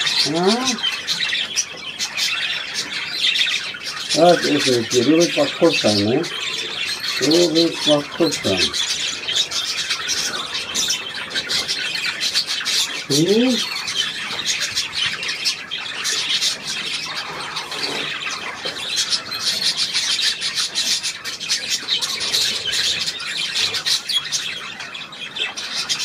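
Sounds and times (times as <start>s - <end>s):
budgerigars chattering and squawking: 0.0s - 26.0s.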